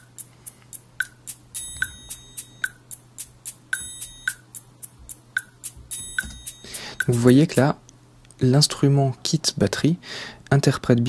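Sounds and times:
shaker and wood-block ticks: 0.0 - 8.4
ringing triangle hit: 1.6 - 3.0, 3.8 - 4.6, 5.9 - 7.7.

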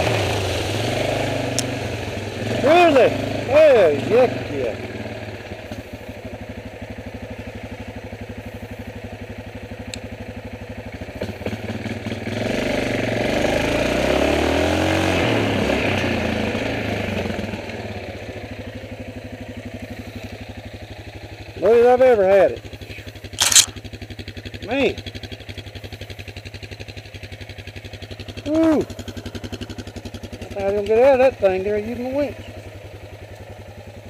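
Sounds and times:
atv engine revving and idling: 0.0 - 34.0.

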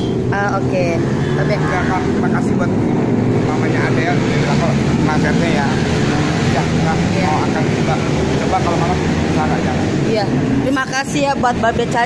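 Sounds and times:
people talking: 0.3 - 12.0.

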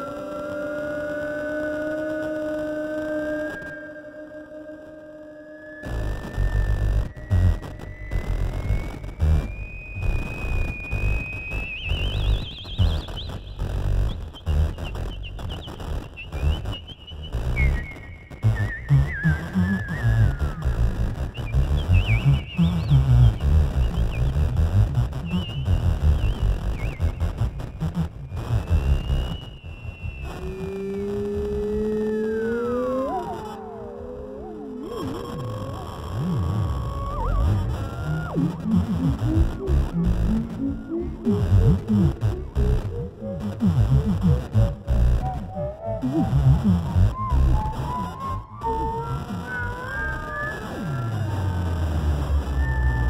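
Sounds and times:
theremin melody with vibrato: 0.0 - 14.1, 16.2 - 53.0.

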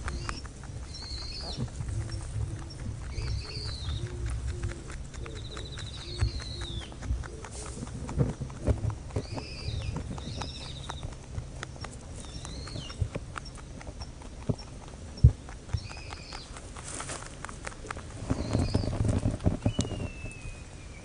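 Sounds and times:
rabbits crunching hay: 0.0 - 21.0.

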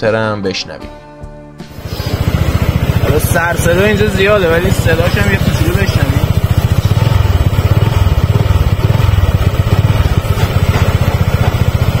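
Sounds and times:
scooter engine idling: 1.7 - 12.0.

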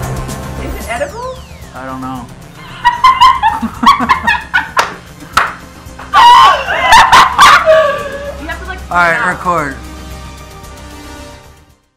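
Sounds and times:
background music: 0.0 - 11.9.

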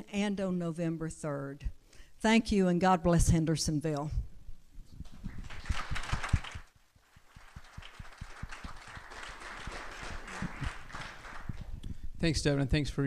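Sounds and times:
audience applause: 5.3 - 11.7.

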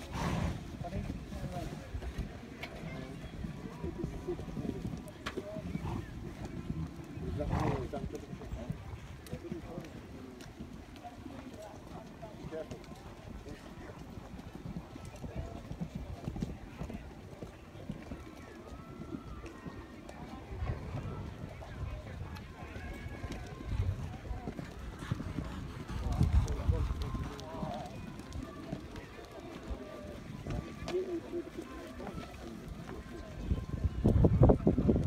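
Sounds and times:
pony hoofbeats on sand: 0.0 - 35.0.

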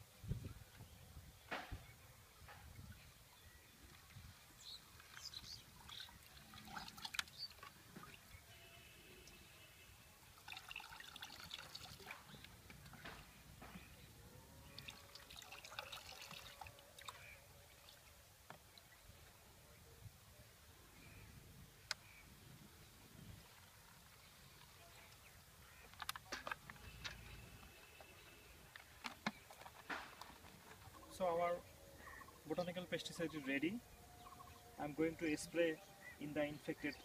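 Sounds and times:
liquid trickling into a bottle: 5.8 - 8.2, 10.3 - 13.0, 14.6 - 17.4
handling clicks and knocks: 25.9 - 27.2, 28.7 - 30.9.

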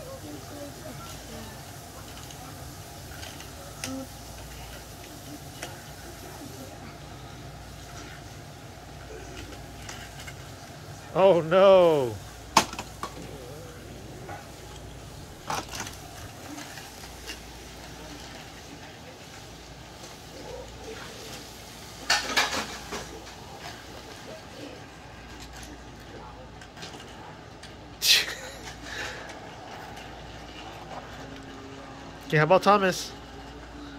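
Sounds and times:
plastic toy train pieces clattering: 2.0 - 4.8, 9.3 - 10.5, 15.3 - 20.2, 25.2 - 31.6.

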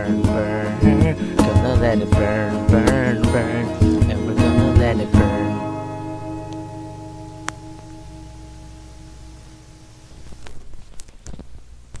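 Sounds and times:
acoustic guitar chord ringing: 0.0 - 10.4.

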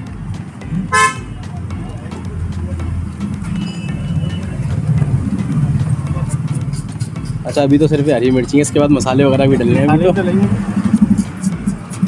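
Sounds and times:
road traffic rumbling: 0.0 - 12.0
faint horn: 0.9 - 1.3
vehicle horn toot: 0.9 - 1.4, 3.6 - 4.5.

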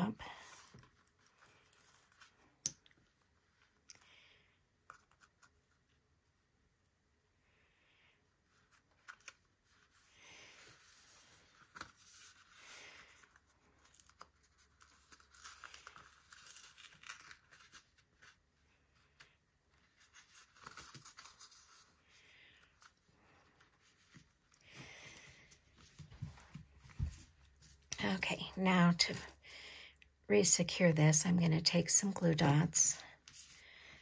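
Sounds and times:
ribbon peeling and rustling: 0.0 - 4.0, 8.4 - 29.5.

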